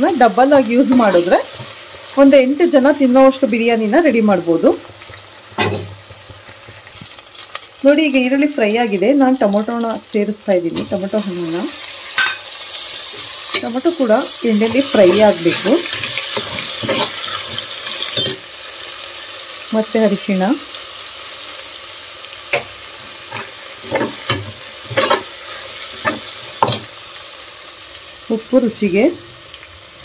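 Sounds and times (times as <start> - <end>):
onions sizzling in oil: 0.0 - 30.0
spoon scraping a metal pot: 14.9 - 18.4.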